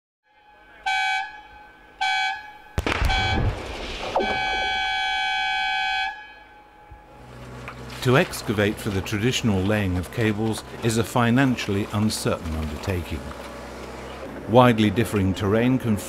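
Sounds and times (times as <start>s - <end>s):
blasting warning horn toots: 0.3s - 3.5s, 4.2s - 11.0s
rock blast crack and rumble: 2.8s - 5.1s.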